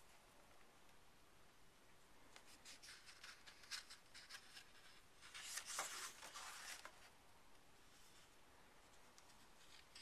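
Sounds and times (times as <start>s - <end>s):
book pages rustling: 2.4s - 7.1s.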